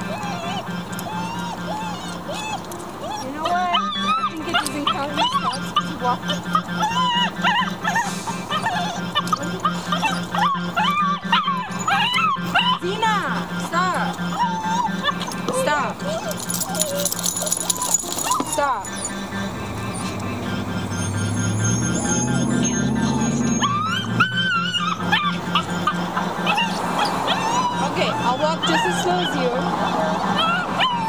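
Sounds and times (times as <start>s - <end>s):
puppy whining: 0.0s - 31.0s.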